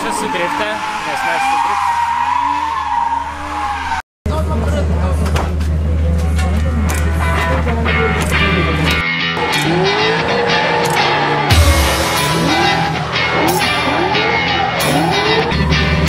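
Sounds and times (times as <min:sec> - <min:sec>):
car engine revving: 0:00.0 - 0:05.2, 0:06.2 - 0:16.0
rock music with heavy beat: 0:07.9 - 0:16.0.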